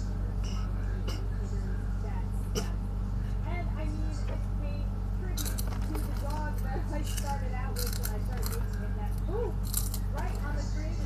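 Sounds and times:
low electrical hum: 0.0 - 11.0
crunchy snack chewing: 7.1 - 10.4.

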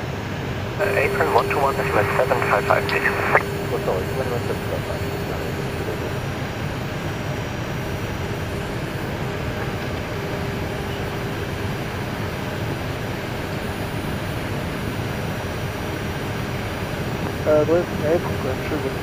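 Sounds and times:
aircraft cockpit engine rush: 0.0 - 19.0
faint steady hum: 0.4 - 19.0.

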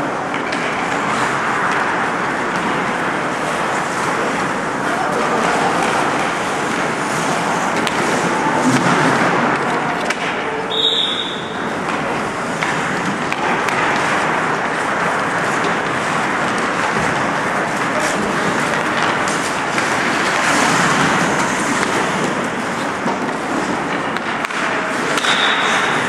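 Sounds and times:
skates scraping on ice: 0.0 - 26.0.

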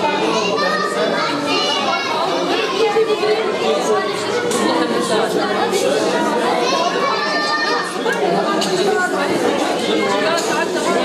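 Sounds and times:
children calling and chattering: 0.0 - 11.0
crowd talking: 0.0 - 11.0.

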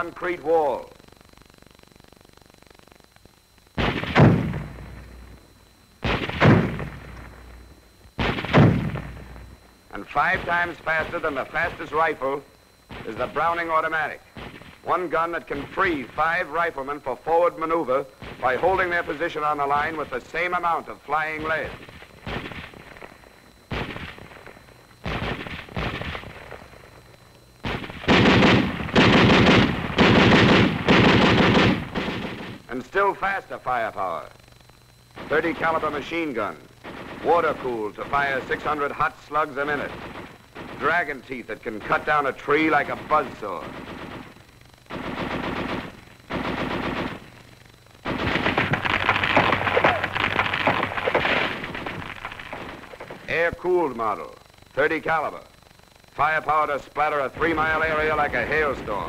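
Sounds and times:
rapid automatic gunfire bursts: 3.8 - 5.0, 8.2 - 9.2, 21.4 - 23.0, 25.0 - 26.7, 27.6 - 32.6, 36.8 - 53.4
gunshots: 3.8 - 5.3, 6.0 - 7.6, 8.2 - 9.4, 12.9 - 13.6, 14.4 - 14.8, 18.2 - 20.2, 21.4 - 23.1, 23.7 - 26.7, 27.6 - 32.7, 35.2 - 36.0, 36.8 - 47.4, 48.0 - 53.4.

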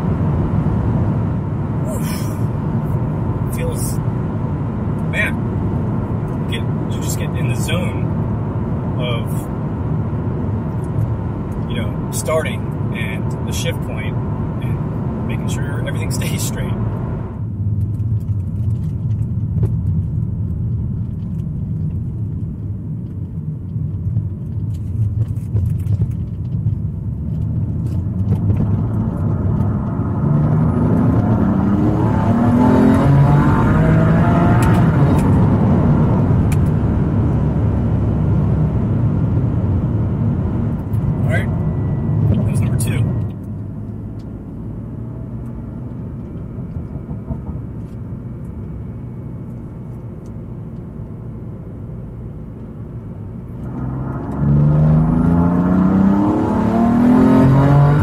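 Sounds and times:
car engine drone: 0.0 - 58.0
road noise: 0.0 - 58.0.

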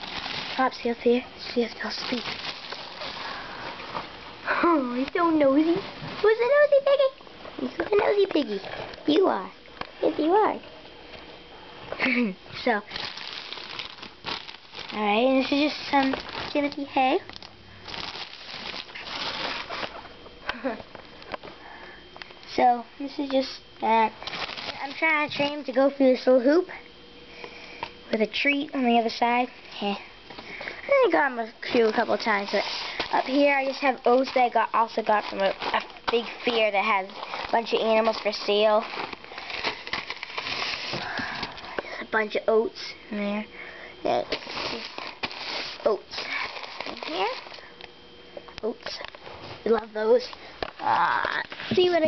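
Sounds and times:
container rustling: 0.0 - 4.2, 12.6 - 17.3, 17.9 - 20.1, 24.0 - 25.7, 31.6 - 41.7, 44.2 - 47.6
plastic bag crinkling: 0.0 - 4.2, 12.6 - 20.1, 24.0 - 25.8, 31.2 - 41.8, 44.1 - 47.8.

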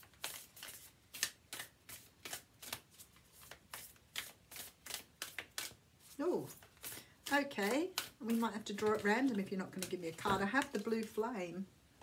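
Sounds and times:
cards being shuffled: 0.0 - 11.2.

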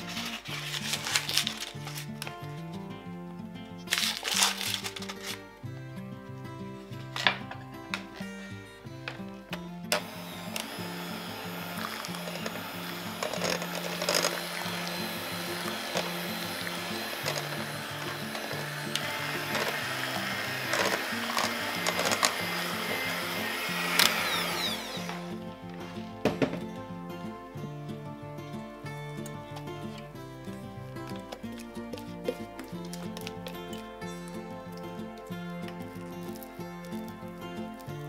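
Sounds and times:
electric hand mixer beating batter: 0.0 - 2.0, 9.8 - 26.8.

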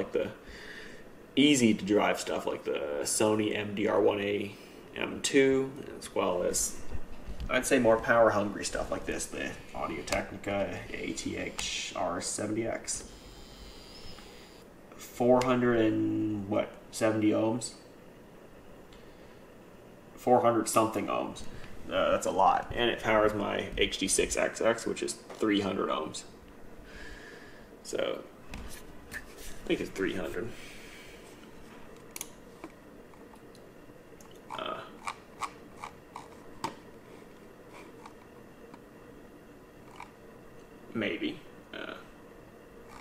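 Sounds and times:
faint steady hiss: 0.0 - 35.4
faint high whine: 0.0 - 43.0.

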